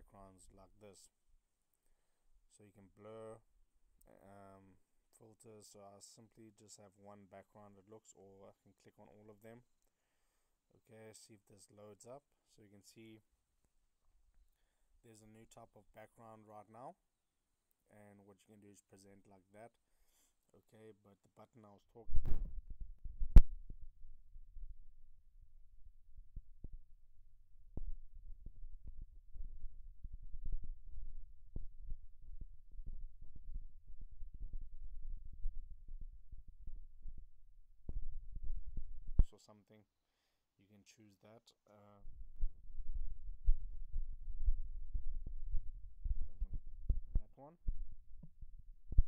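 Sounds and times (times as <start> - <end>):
low rumble: 22.1 - 39.2, 42.0 - 49.0.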